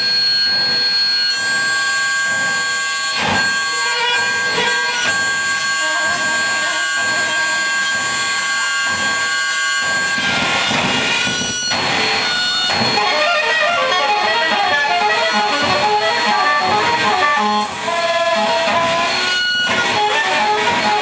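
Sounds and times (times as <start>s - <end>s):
harsh electronic noise: 0.0s - 21.0s
high whistling tones: 0.0s - 21.0s.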